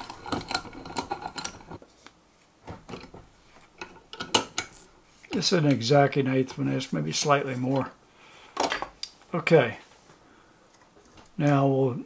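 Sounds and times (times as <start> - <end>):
metal vise clicks and knocks: 0.0 - 1.8, 3.8 - 5.9.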